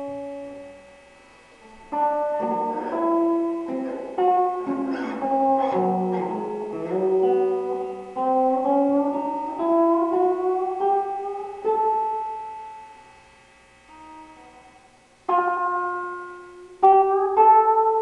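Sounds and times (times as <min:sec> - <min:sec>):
plucked guitar melody: 0:00.0 - 0:13.3, 0:13.9 - 0:18.0.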